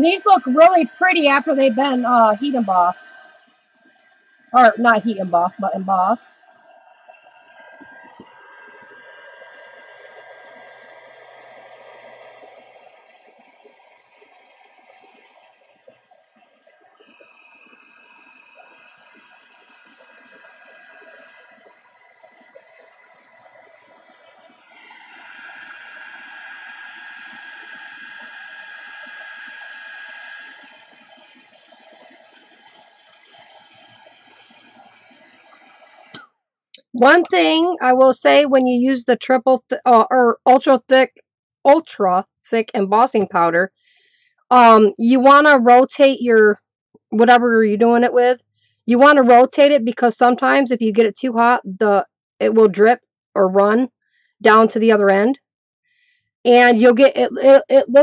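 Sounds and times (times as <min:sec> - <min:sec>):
heat gun whining: 0:00.0 - 0:36.3.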